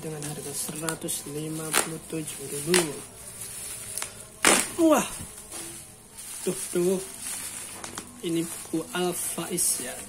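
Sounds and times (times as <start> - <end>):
plastic ripping: 0.0 - 9.2
plastic wrapping rustling: 0.0 - 10.0.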